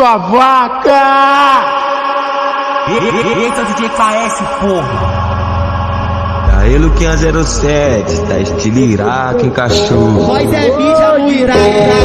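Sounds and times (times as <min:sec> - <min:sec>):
chanted sustained vocal note: 0:04.5 - 0:09.3.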